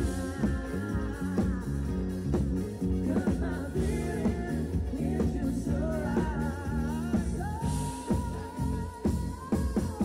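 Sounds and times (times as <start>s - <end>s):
pop-rock band playing: 0.0s - 10.0s
woman singing into a microphone: 0.0s - 10.0s.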